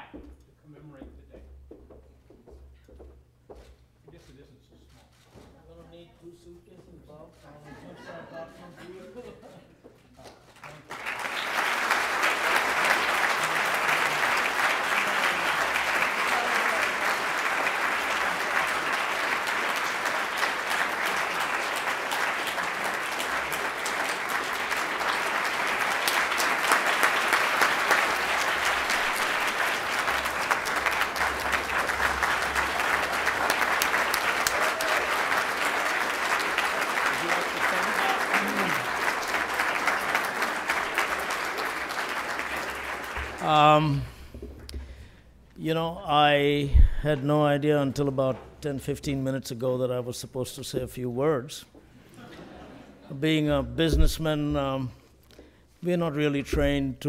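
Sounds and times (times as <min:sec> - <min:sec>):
audience applause: 0:10.6 - 0:44.1.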